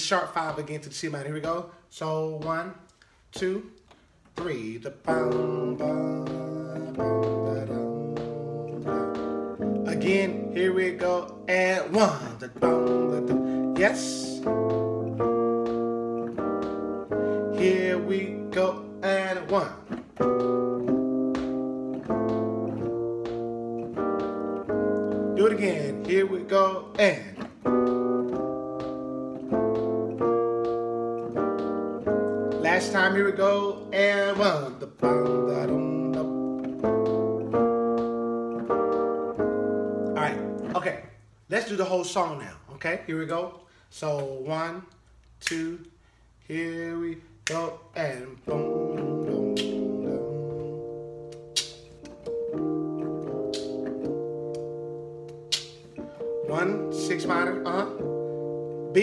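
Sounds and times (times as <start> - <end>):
sharp snaps: 2.4 - 40.8, 45.2 - 45.9, 47.4 - 47.8, 48.6 - 58.2
electronic keyboard chords: 4.1 - 41.4, 48.0 - 59.0.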